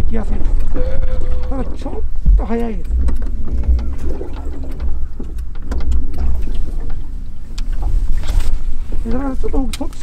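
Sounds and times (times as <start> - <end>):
wind buffeting microphone: 0.0 - 8.8.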